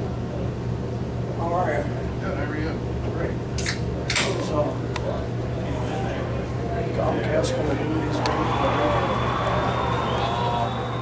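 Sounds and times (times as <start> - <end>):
steady background hum: 0.0 - 11.0
crowd voices: 4.4 - 11.0.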